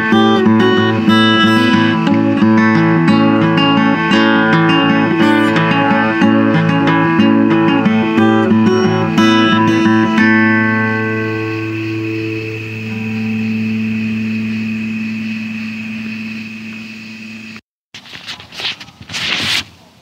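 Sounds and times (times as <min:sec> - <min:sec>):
acoustic guitar picking: 0:00.0 - 0:17.6.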